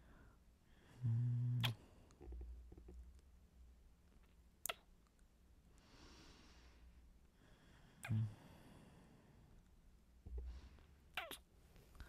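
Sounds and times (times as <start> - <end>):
soft breath: 0.0 - 2.1, 5.7 - 9.7, 10.3 - 11.1
mouth click: 1.6 - 1.8, 4.6 - 5.2, 8.0 - 8.3.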